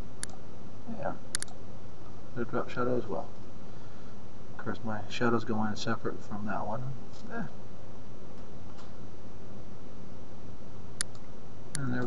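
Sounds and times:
faint low hum: 0.0 - 12.0
sharp click: 1.3 - 1.6, 11.0 - 12.0.

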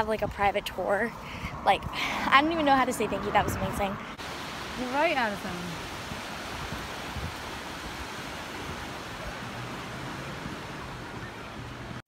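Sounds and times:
wind on microphone: 0.0 - 12.0
small waves washing on shore: 1.1 - 12.0.

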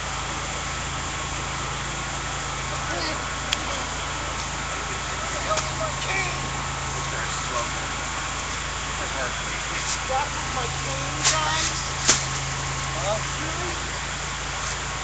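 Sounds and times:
street noise: 0.0 - 15.0
vehicle engine idling: 0.0 - 15.0
faint voices: 2.6 - 12.1.

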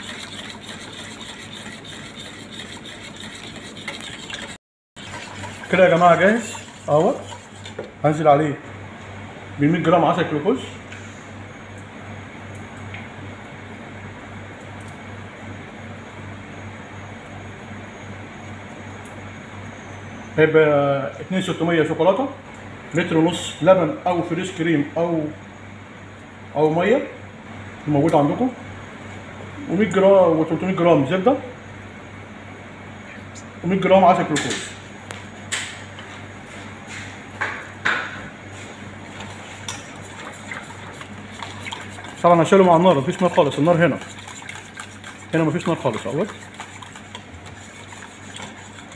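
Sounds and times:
whisk clinking against metal pot: 0.0 - 7.8, 39.2 - 48.9
steady low hum: 0.0 - 20.4, 21.1 - 48.9.

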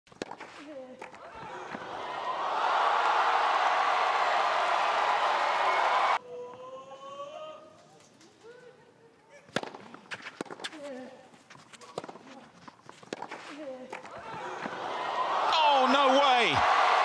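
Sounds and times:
crowd cheering and shouting: 1.2 - 6.2, 14.1 - 17.0
racket hitting tennis ball: 11.8 - 14.2.

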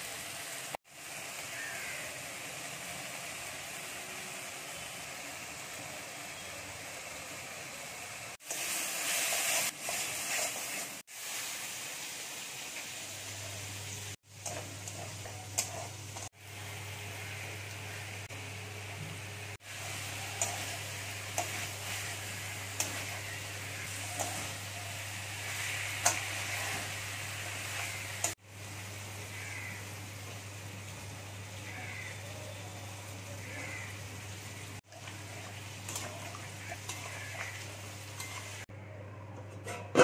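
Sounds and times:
food sizzling in pan: 0.0 - 38.7
metal spatula scraping pan: 35.9 - 38.6.

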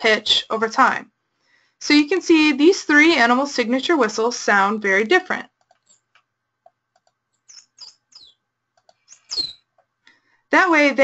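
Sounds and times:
dolphin whistles: 7.5 - 8.4, 9.1 - 9.6.

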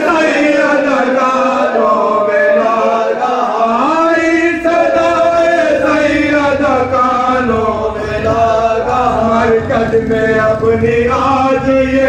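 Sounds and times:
men chanting an elegy: 0.0 - 12.0.

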